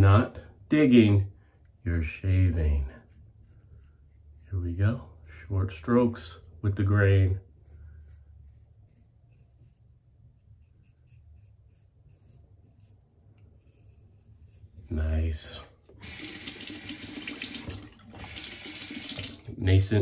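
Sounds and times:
razor scratching through stubble: 2.0s - 17.6s
tap running into sink: 16.1s - 19.6s.

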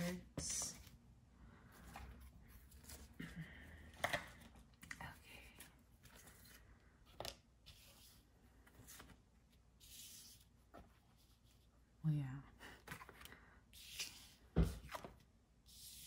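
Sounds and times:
papery card slide: 13.8s - 15.0s.

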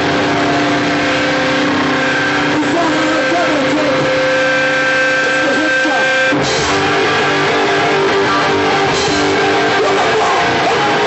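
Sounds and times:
electric guitar feedback: 0.0s - 11.0s.

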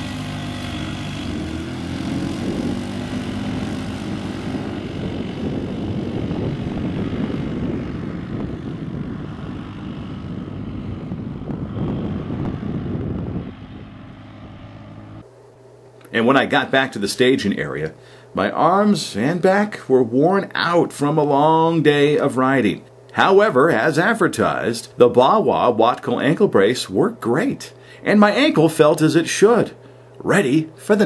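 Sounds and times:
atv engine revving: 0.0s - 15.3s.

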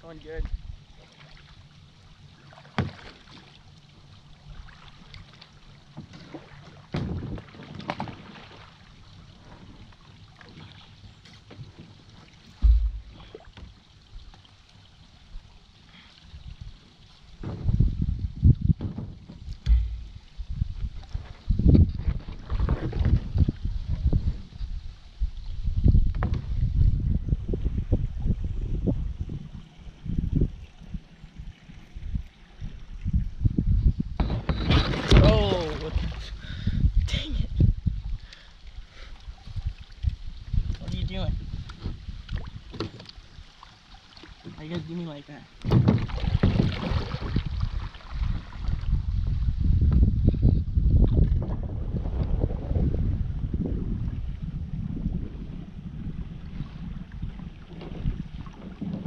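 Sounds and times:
water and paddle sounds: 0.0s - 59.0s
boat hull thumping and rumbling: 2.7s - 3.2s, 5.9s - 8.4s, 11.3s - 14.4s, 17.3s - 23.6s, 25.8s - 27.2s, 33.5s - 36.3s, 41.7s - 43.1s, 44.4s - 48.4s, 57.3s - 59.0s
sharp knock: 12.6s - 13.2s.

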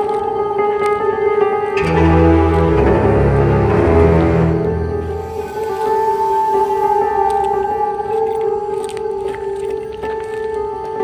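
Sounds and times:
ambient drone of held tones: 0.0s - 10.0s.

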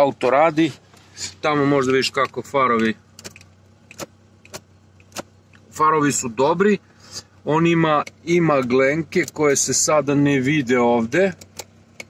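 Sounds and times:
car engine idling hum: 0.0s - 12.0s.

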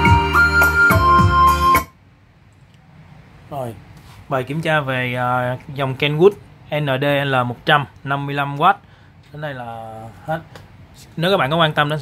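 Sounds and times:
music with steady bass line: 0.0s - 1.9s
faint room hiss: 1.9s - 12.0s.

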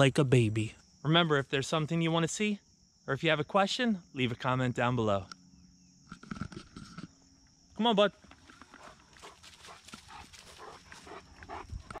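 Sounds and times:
dog sniffing and breathing: 8.7s - 12.0s.

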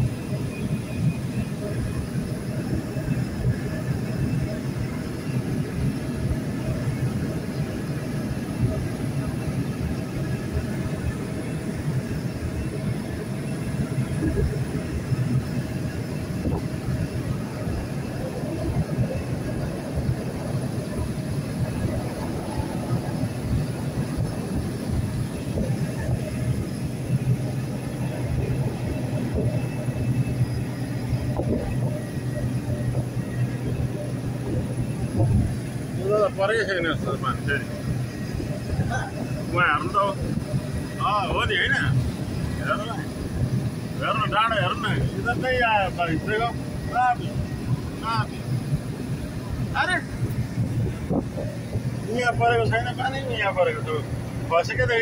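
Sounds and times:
road noise: 0.0s - 55.0s
vehicle engine hum: 0.0s - 55.0s.

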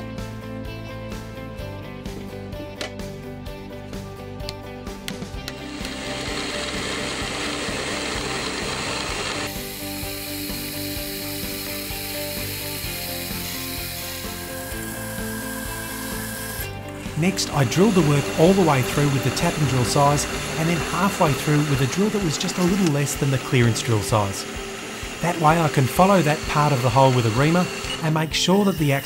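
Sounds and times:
background music: 0.0s - 29.0s
milling machine cutting steel: 5.5s - 29.0s.

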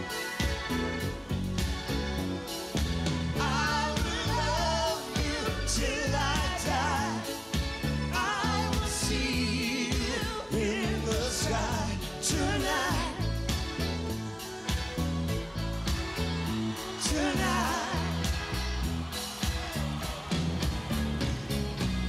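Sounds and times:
live band with bass and drums: 0.0s - 22.0s
people singing pop duet: 3.2s - 15.2s, 15.8s - 20.8s.

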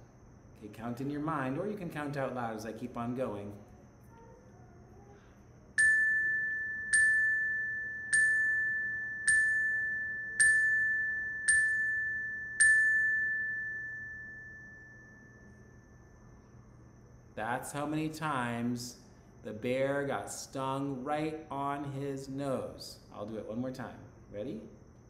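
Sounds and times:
single-pitched chime: 5.8s - 16.3s.

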